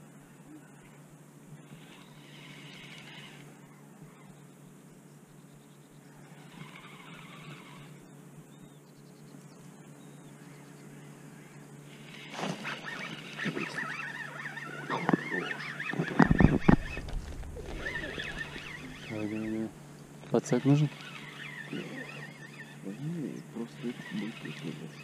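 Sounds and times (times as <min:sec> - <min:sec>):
birds honking: 0:10.4 - 0:25.0.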